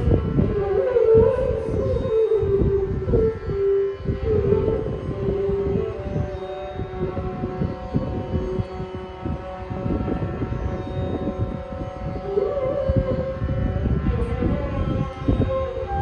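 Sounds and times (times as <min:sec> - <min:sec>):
bamboo flute melody: 0:00.0 - 0:16.0
steady drone: 0:00.0 - 0:16.0.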